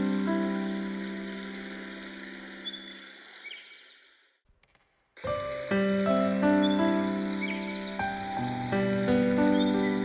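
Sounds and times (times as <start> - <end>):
bird chirps: 0.0 - 4.3, 6.5 - 10.0
forest ambience hiss: 0.0 - 4.4, 5.2 - 10.0
piano chord: 5.3 - 10.0.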